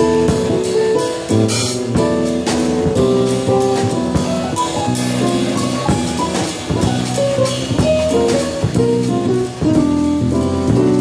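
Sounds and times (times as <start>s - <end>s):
drum kit and cymbals: 0.0s - 11.0s
electric bass guitar: 0.0s - 11.0s
keyboard chords: 0.0s - 11.0s.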